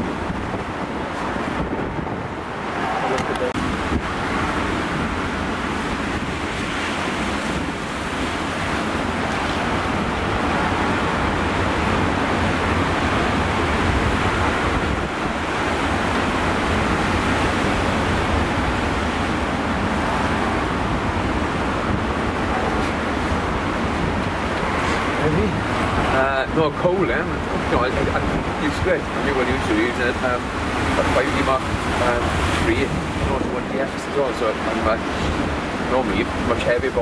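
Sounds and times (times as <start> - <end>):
surf breaking over rocks: 0.0 - 37.0
wind rumbling on microphone: 0.0 - 37.0.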